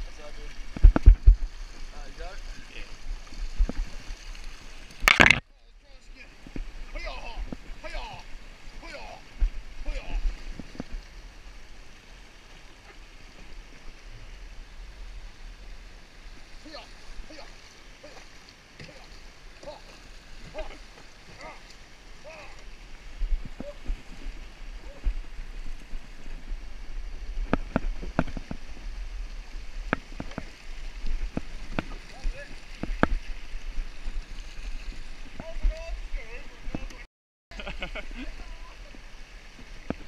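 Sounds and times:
floodwater rushing: 0.0 - 40.0
kayak knocking against log: 29.8 - 30.6, 31.2 - 32.0, 32.8 - 33.3.

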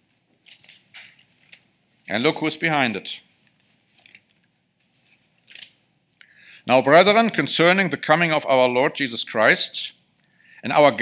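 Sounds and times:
paper page rustle: 0.4 - 1.6.

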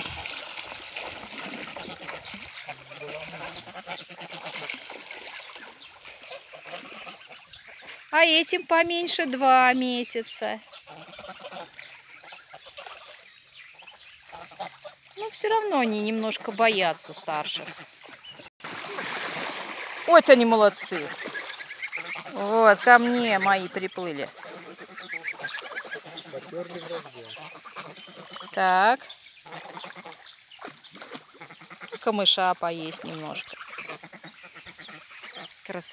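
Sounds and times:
water splashing: 0.0 - 35.9
goslings calling softly: 0.7 - 8.1, 10.3 - 15.2, 20.6 - 35.9.

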